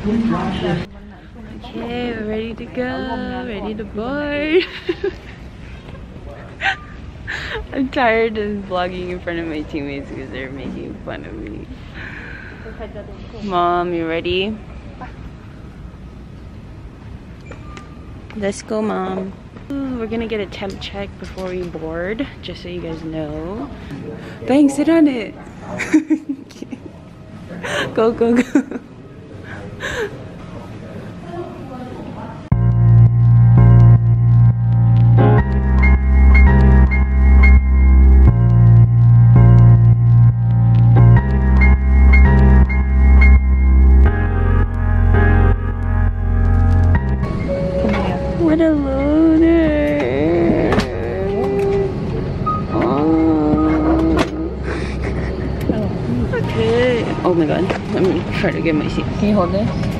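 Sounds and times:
airliner cabin drone: 32.5 - 58.8
low steady background rumble: 32.5 - 59.6
person singing long notes: 47.8 - 52.1, 52.7 - 54.6
short breathy laugh: 54.6 - 55.7.

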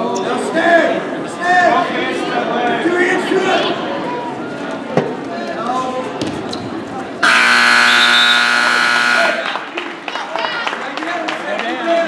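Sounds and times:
spectators' voices: 0.0 - 12.0
harsh scoreboard buzzer: 7.2 - 9.5.

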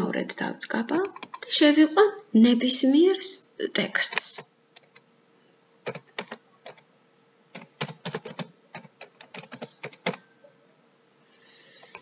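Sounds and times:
computer keyboard typing: 1.0 - 1.4, 4.0 - 5.0, 5.8 - 6.8, 7.5 - 10.2.

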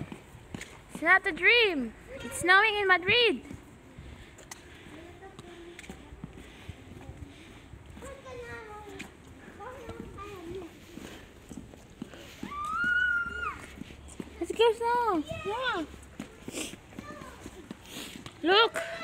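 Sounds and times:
footsteps on wet tiles: 0.0 - 19.0
distant children's voices: 1.9 - 19.0.

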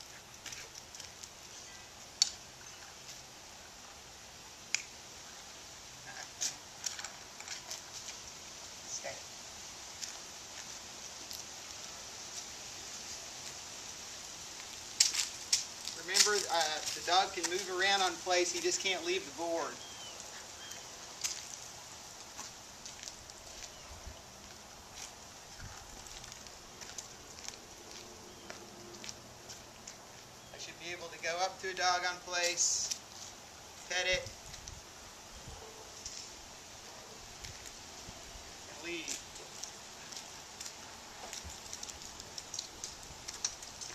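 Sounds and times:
faint outdoor hiss: 0.0 - 43.9
sharp crackling clicks: 2.2 - 2.4, 4.7 - 5.0, 39.1 - 43.9
footsteps on dry leaves: 9.3 - 30.4.

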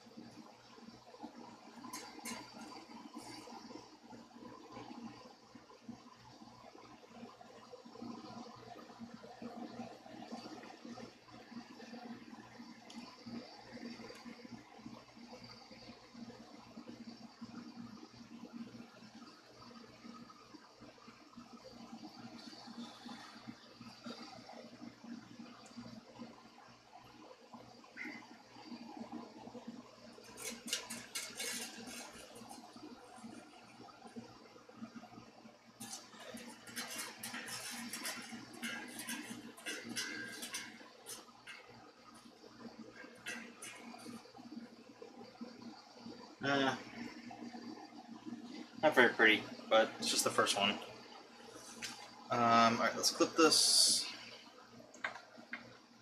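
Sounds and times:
guitar string rubbing: 30.3 - 32.7, 35.8 - 41.3.

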